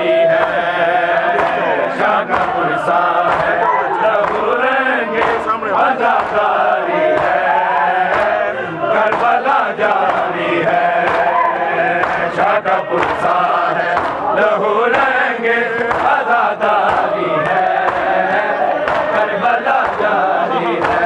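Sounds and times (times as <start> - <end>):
men chanting a lament: 0.0 - 21.0.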